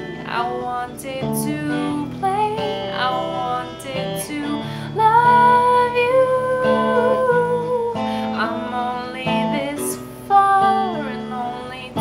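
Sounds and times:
electric guitar chords: 0.0s - 12.0s
woman singing: 0.0s - 12.0s.

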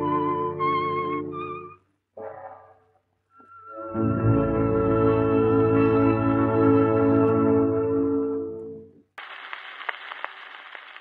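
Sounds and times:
record surface hiss: 9.0s - 11.0s.

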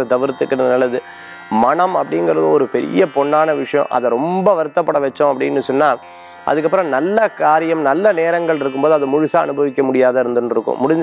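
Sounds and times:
man talking: 0.0s - 11.0s
steady low buzz: 0.0s - 11.0s.

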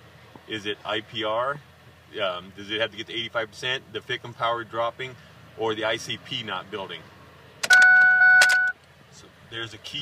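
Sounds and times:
high electronic beep: 7.6s - 8.8s.

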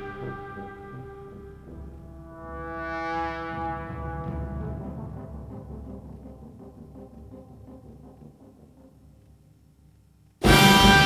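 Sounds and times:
brass quintet chord: 0.0s - 6.1s, 10.4s - 11.0s.

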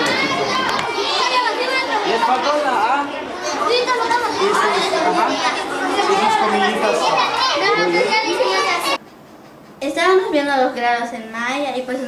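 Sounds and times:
children chattering: 0.0s - 9.0s.

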